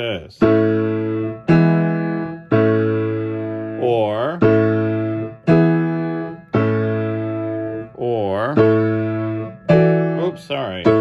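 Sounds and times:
piano chords ringing: 0.0s - 11.0s.

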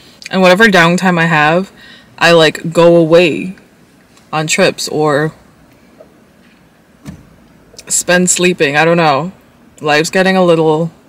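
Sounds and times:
car cabin background: 0.2s - 11.0s
short low thump: 7.0s - 7.5s.

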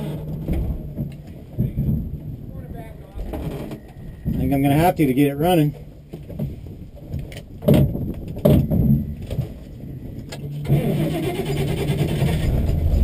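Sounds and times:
engine cranking: 10.2s - 13.0s.

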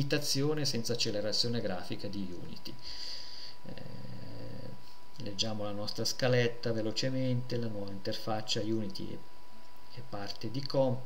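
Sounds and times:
man's low hesitation hum: 0.0s - 11.0s
breathy hiss: 2.7s - 5.1s.

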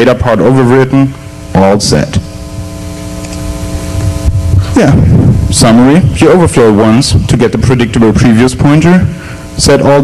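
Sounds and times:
steady electrical hum: 0.0s - 10.0s
low rumble: 3.5s - 7.3s.

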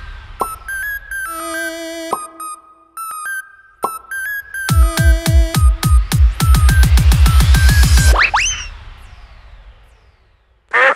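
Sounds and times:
heavy bass hit: 4.7s - 10.0s.

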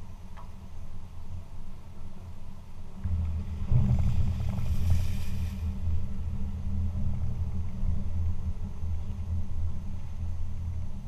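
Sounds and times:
car rumble: 3.0s - 10.5s
rushing hiss: 3.9s - 5.9s.

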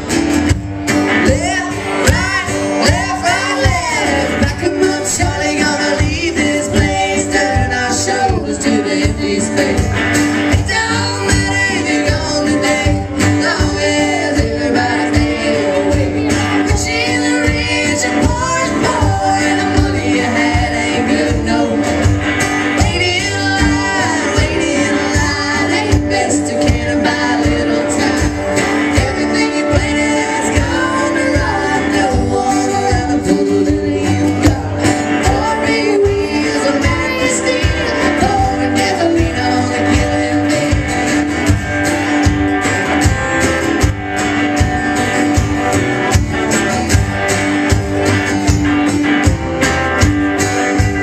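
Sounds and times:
strummed guitars: 0.0s - 51.0s
person singing: 1.0s - 41.3s.

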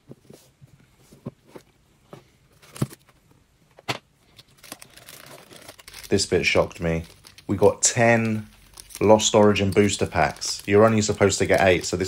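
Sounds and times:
foil packs crinkling: 4.3s - 12.0s.

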